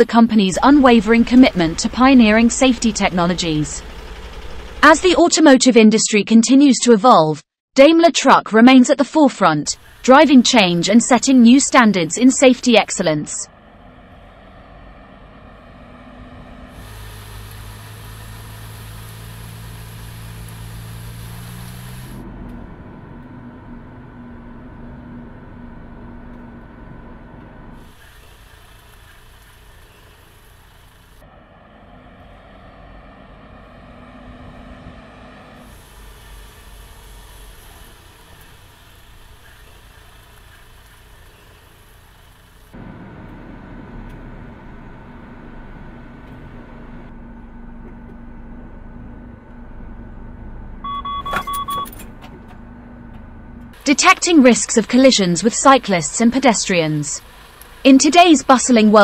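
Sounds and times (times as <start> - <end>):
truck engine hum: 0.0 - 6.0, 9.6 - 59.0
high hiss: 16.8 - 22.2, 35.6 - 42.7.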